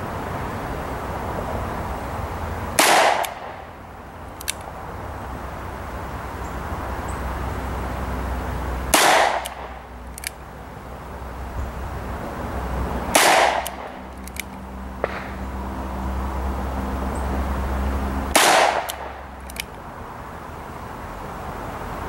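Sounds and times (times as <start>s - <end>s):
revolver shots with echo: 2.8s - 3.6s, 8.9s - 9.8s, 13.1s - 14.0s, 18.3s - 19.2s.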